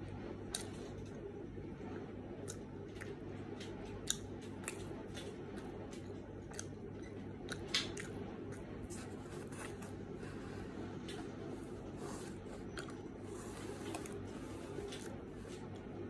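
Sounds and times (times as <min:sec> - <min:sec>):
steady low hum: 0:00.0 - 0:16.0
chewing crunchy pizza: 0:00.4 - 0:01.4, 0:02.3 - 0:16.0
wet mouth clicks: 0:06.5 - 0:08.2.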